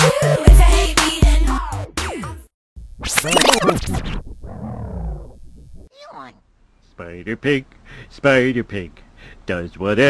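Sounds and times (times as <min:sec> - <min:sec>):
squealing record scratching: 0:03.0 - 0:05.9.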